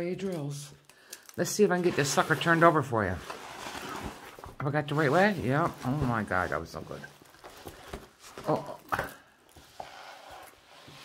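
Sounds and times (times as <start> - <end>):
canvas rustling: 1.9 - 8.6.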